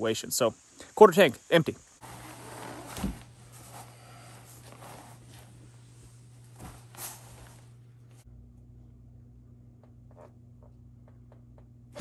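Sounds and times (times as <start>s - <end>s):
low steady hum: 1.8s - 12.0s
quilt rustling: 2.0s - 8.2s.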